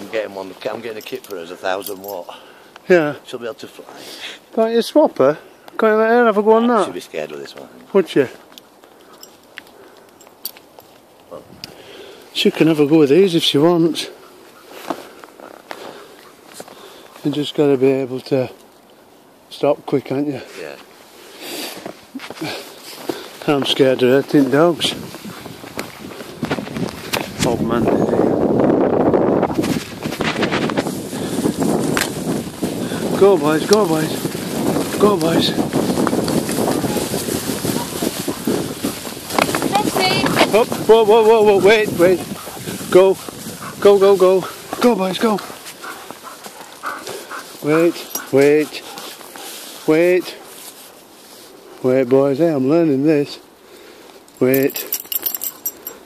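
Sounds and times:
paws and tyres crunching snow: 0:11.9 - 0:18.5, 0:20.4 - 0:28.4, 0:29.5 - 0:52.9.

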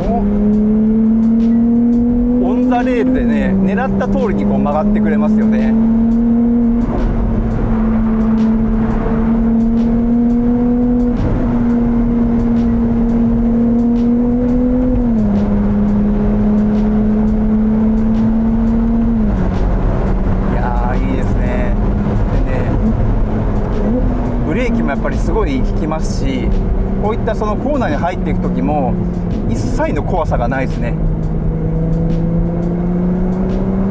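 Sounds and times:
high-pitched car engine under load: 0:00.0 - 0:33.9.

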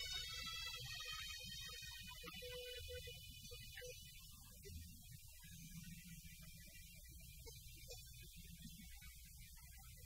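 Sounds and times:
faint hiss: 0:00.0 - 0:10.0
low steady hum: 0:00.0 - 0:10.0.

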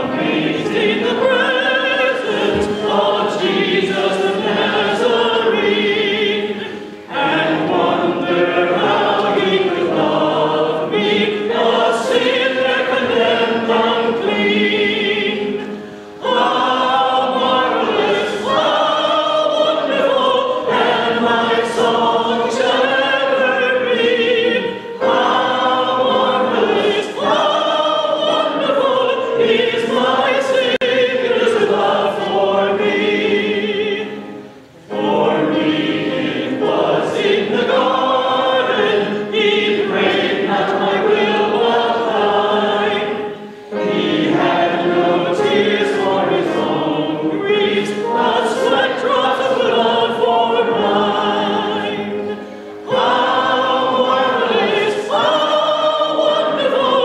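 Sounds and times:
congregation singing a hymn: 0:00.0 - 0:57.0.

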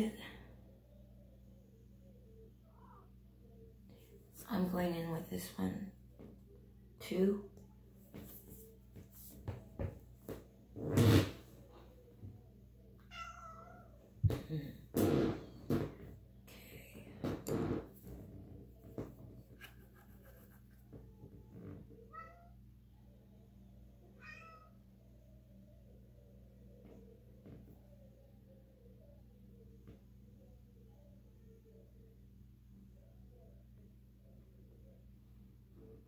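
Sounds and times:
cat meowing: 0:13.0 - 0:14.0, 0:22.1 - 0:22.5, 0:24.2 - 0:24.8.

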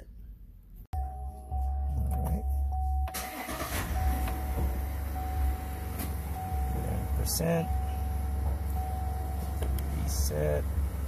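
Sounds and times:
diesel engine idling: 0:01.0 - 0:11.0
thin steady whine: 0:01.0 - 0:11.0.

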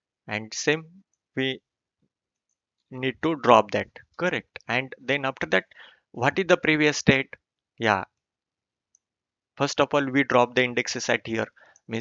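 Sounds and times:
man speaking: 0:00.3 - 0:01.6, 0:03.0 - 0:08.0, 0:09.6 - 0:12.0.

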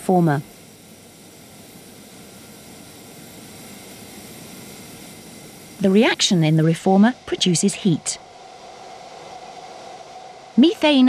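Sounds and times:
gas burners roaring: 0:00.0 - 0:11.0.

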